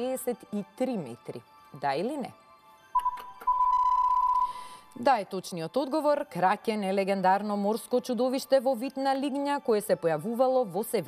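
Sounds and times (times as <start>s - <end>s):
steady electronic beep: 3.0s - 4.8s.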